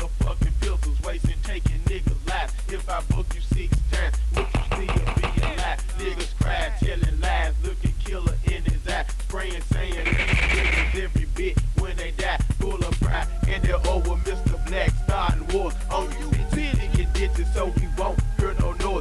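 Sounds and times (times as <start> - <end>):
rapping over a hip hop beat: 0.0 - 19.0.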